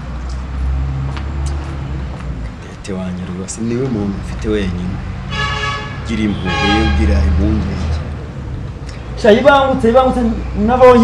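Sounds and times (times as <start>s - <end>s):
man talking: 2.6s - 5.0s, 6.1s - 8.1s
car horn tooting: 5.3s - 7.4s.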